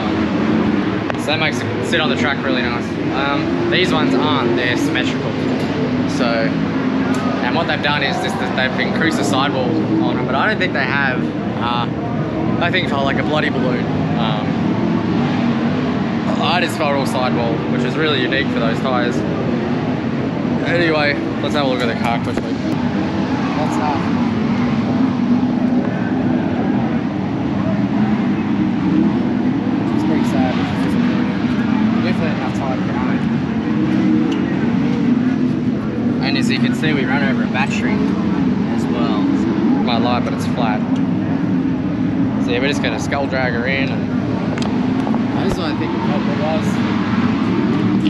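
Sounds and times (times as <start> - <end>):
indistinct voices: 0.0 - 19.3, 20.4 - 48.0
engines droning: 0.0 - 48.0.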